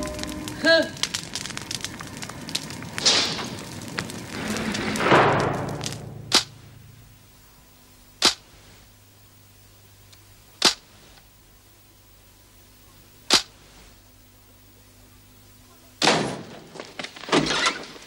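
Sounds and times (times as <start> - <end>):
fire crackling: 0.0 - 18.0
sharp snap sound effects: 5.8 - 6.7, 8.2 - 8.5, 10.6 - 10.8, 13.3 - 13.5.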